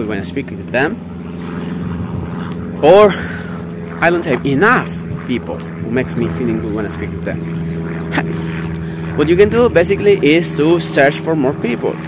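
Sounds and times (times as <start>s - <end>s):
engine drone: 0.0s - 12.0s.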